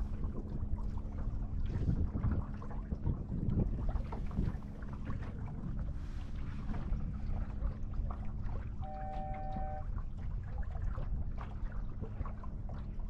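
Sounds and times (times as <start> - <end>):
water rushing along a hull: 0.0 - 13.0
wind on microphone: 0.0 - 13.0
brief high tone: 8.8 - 9.9.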